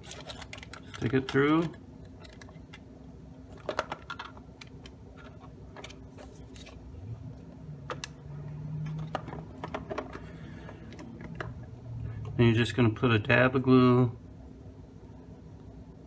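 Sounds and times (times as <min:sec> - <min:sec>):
plastic parts clicking: 0:00.0 - 0:02.8.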